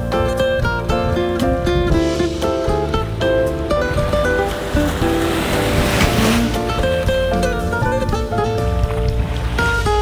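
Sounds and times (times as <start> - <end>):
plucked guitar-like music: 0.0 - 10.0
rushing noise: 2.9 - 7.7.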